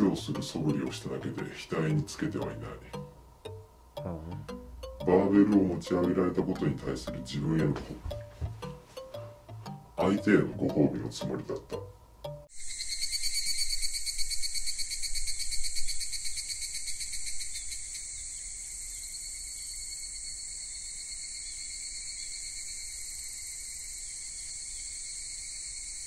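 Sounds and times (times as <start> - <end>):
crickets chirring: 12.3 - 26.0.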